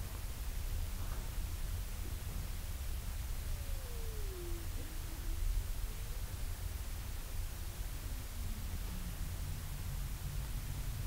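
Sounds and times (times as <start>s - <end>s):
thin tone gliding downward: 3.5s - 6.2s.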